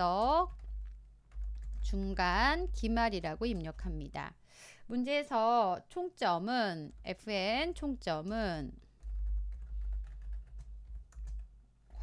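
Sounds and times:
steady low hum: 0.0s - 4.5s, 6.6s - 12.0s.

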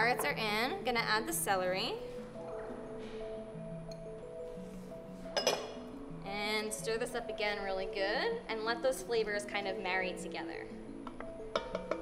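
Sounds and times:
soft background music: 0.0s - 12.0s
ceramic bowl clink: 5.3s - 5.8s.

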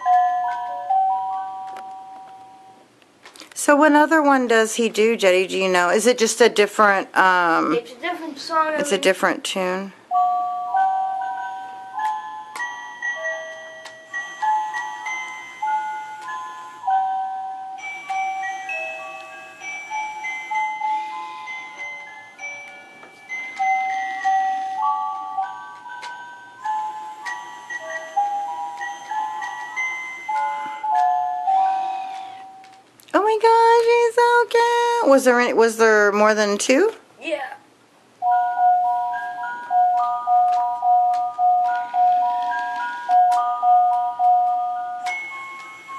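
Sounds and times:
toy playing tinny electronic melody: 10.1s - 32.8s, 38.2s - 45.9s.

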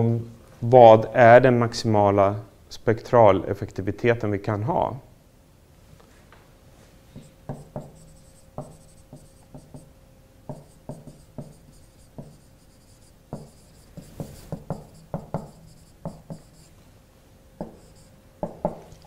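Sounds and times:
marker strokes on whiteboard: 7.2s - 9.9s, 10.5s - 16.8s, 17.6s - 18.1s.

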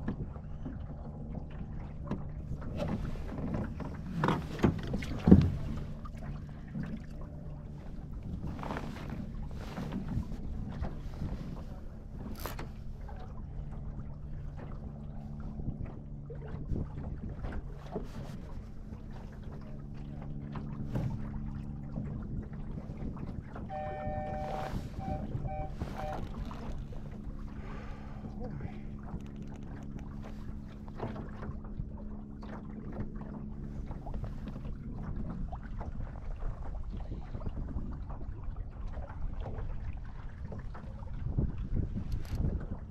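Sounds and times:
boat and rigging knocks: 0.0s - 42.9s
water rushing against hull: 0.0s - 42.9s
wind on microphone: 7.6s - 19.8s, 20.6s - 42.9s
electronic beeps: 23.7s - 26.3s.

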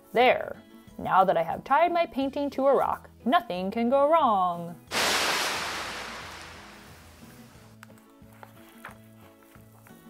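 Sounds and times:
crashing wave hiss: 4.9s - 7.7s.

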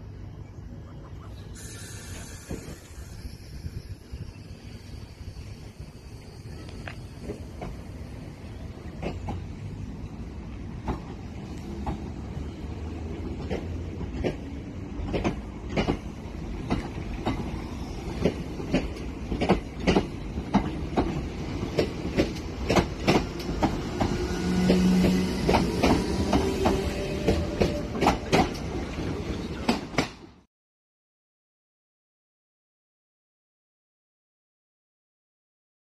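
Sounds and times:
electric train rumbling: 0.0s - 30.5s
wheels clicking over rail joints: 13.3s - 17.5s, 18.2s - 28.8s.

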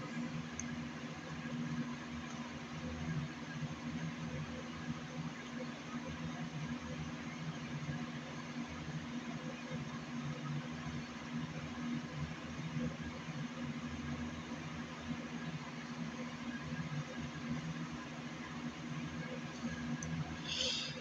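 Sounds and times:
even hiss: 20.4s - 21.0s.

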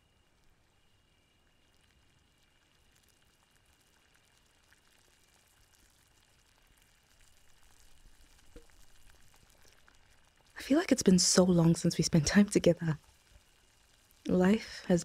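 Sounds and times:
faint crackles: 0.0s - 15.0s
faint steady hiss: 0.0s - 15.0s.

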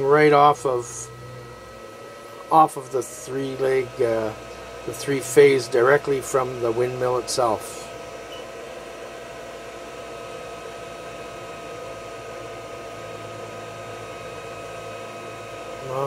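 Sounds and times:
fan hum and hiss: 0.0s - 16.0s.

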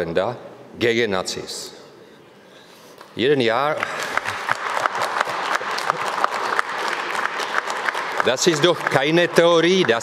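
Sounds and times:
audience applauding: 3.8s - 10.0s.

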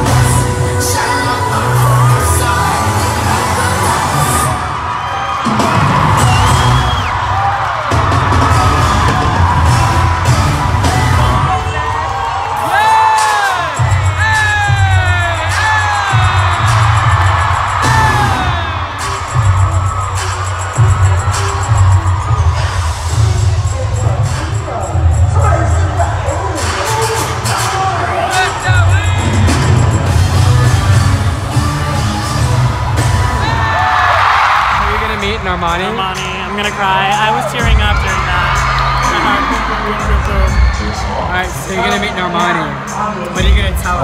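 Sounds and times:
amplified pop music with singing: 0.0s - 44.0s
crowd whooping and screaming: 0.0s - 44.0s.

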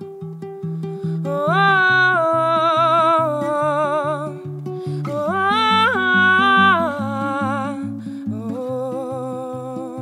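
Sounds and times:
plucked acoustic guitar: 0.0s - 10.0s
woman singing wordlessly: 1.1s - 10.0s.

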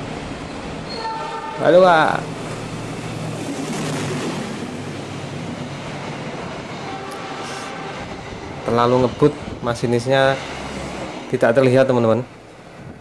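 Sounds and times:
locomotive engine hum: 0.0s - 13.0s
train wheels rushing on rail: 0.0s - 13.0s.

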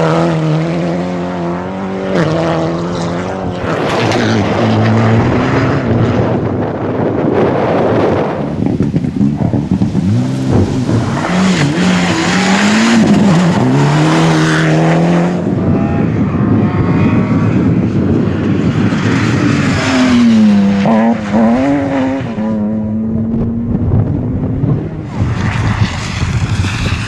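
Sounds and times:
rally car engines revving: 0.0s - 27.0s.

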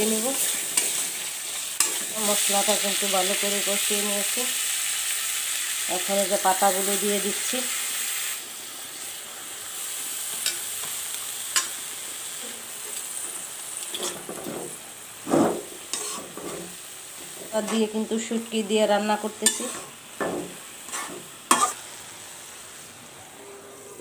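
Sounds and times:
spatula scraping a wok: 0.0s - 4.0s, 11.5s - 18.4s, 19.1s - 22.6s
food sizzling in a wok: 0.0s - 24.0s.

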